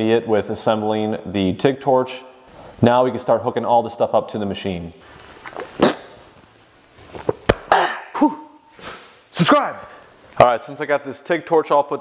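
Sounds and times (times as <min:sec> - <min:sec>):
man gulping drink: 0:05.4 - 0:06.3.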